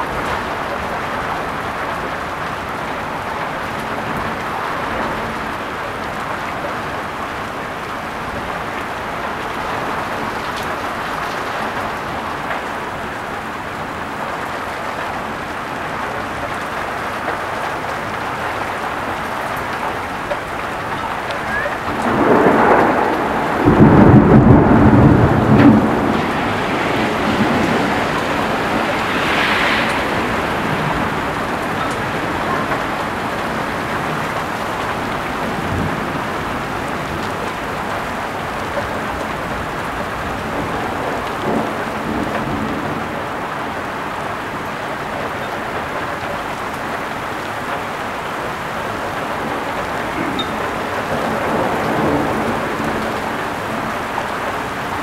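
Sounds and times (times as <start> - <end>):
thunder rumbling: 0.0 - 45.8, 47.1 - 55.0
heavy rain: 0.0 - 55.0.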